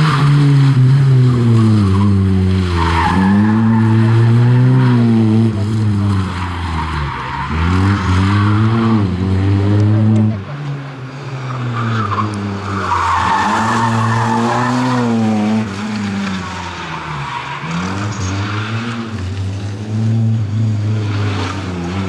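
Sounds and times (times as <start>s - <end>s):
rally car engine revving: 0.0s - 22.0s.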